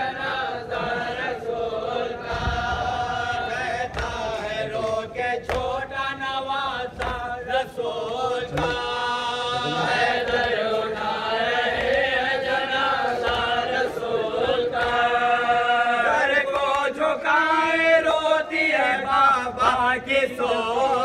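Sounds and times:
men chanting a lament: 0.0s - 21.0s.

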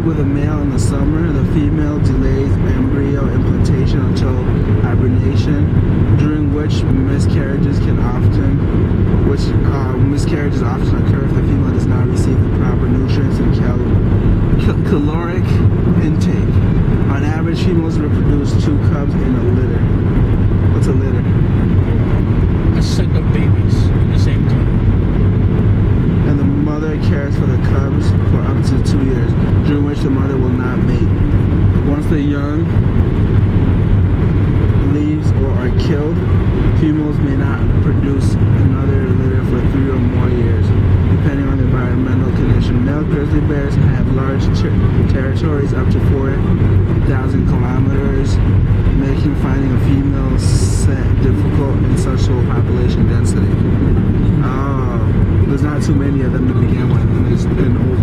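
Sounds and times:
car interior road and engine noise: 0.0s - 58.0s.

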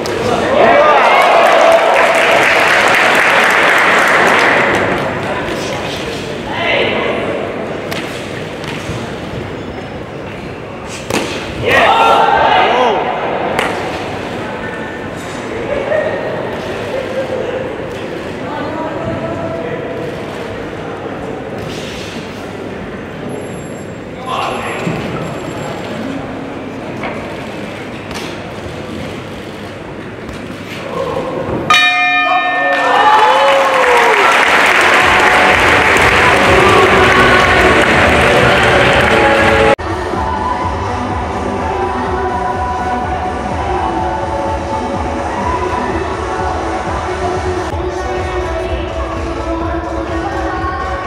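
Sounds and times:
hubbub of voices: 0.0s - 32.6s, 34.0s - 51.0s
crowd shouting: 0.2s - 2.3s
crowd applauding and cheering: 0.7s - 5.2s, 32.7s - 39.8s
boxing ring bell ringing: 31.7s - 33.4s
background music: 34.8s - 51.0s.

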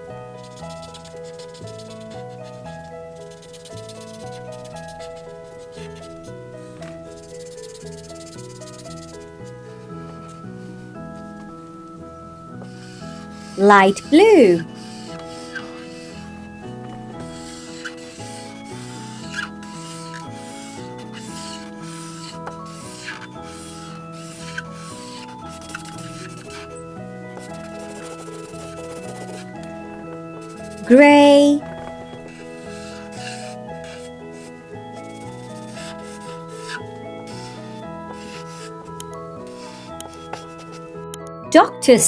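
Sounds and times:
background music: 0.0s - 42.0s
marker rubbing on paper: 0.5s - 9.4s, 12.7s - 16.3s, 17.2s - 26.8s, 27.4s - 29.5s, 30.4s - 31.0s, 32.3s - 38.8s, 39.4s - 40.8s.

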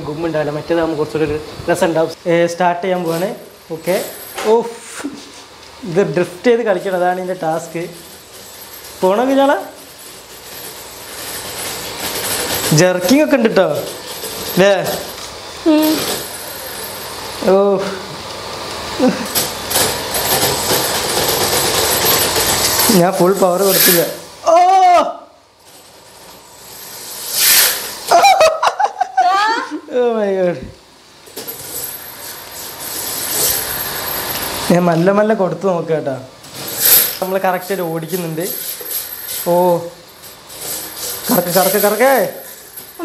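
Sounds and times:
rc car electric motor whirring: 6.9s - 17.5s, 18.4s - 24.3s, 25.6s - 28.2s
whirring hiss of tyres: 25.7s - 29.6s.

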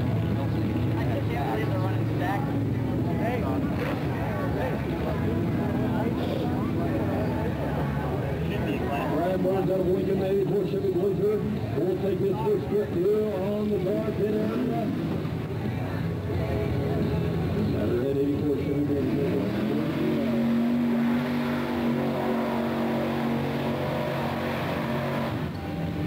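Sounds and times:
truck engine revving hard: 18.3s - 26.0s.

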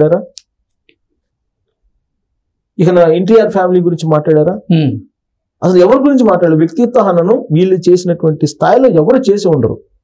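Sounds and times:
man speaking: 0.0s - 0.4s, 2.8s - 9.9s.

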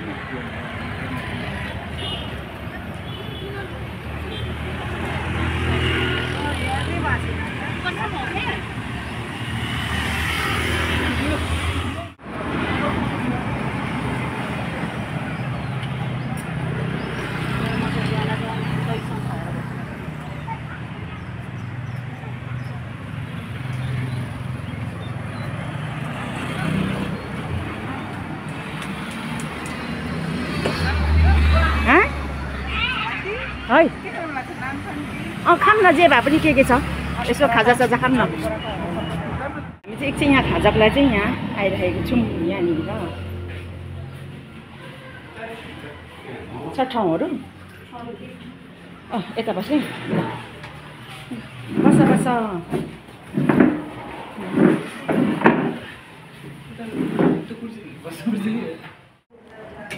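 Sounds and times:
motorcycle and car engines: 0.0s - 44.7s, 45.9s - 57.9s
people's voices: 0.0s - 59.9s
vehicles passing: 0.0s - 59.9s.

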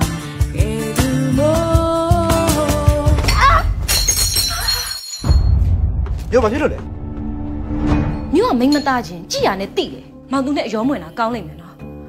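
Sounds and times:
ceramic cup smashing on tiles: 3.8s - 5.5s.

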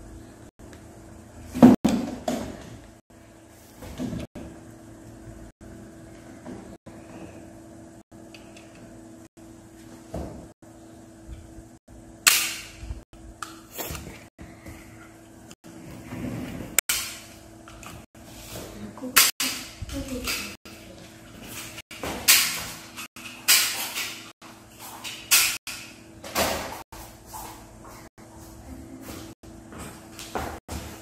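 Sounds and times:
faint steady hum: 0.0s - 21.3s.

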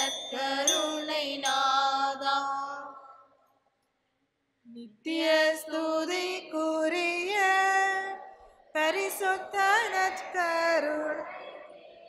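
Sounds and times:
slow hymn chanted: 0.0s - 3.4s, 5.1s - 12.0s.

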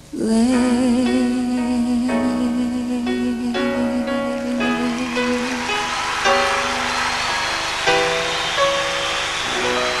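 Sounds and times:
live ballad held chords: 0.0s - 10.0s.

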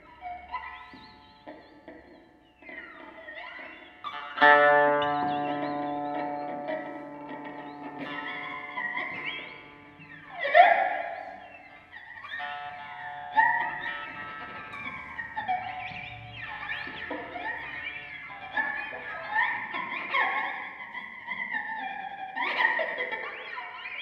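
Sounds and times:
electric guitar with effects: 0.0s - 24.0s.

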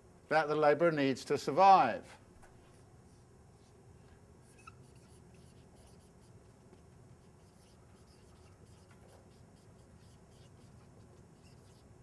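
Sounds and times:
pen scratching while writing: 7.1s - 11.8s.

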